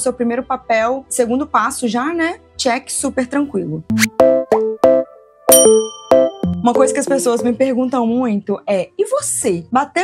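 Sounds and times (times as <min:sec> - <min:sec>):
clipped jingle notes: 0:04.0 - 0:07.6
bright ringing chime: 0:05.5 - 0:07.6.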